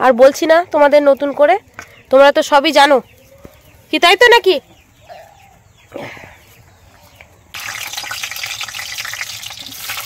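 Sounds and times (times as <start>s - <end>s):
potatoes sizzling in oil: 7.6s - 10.0s.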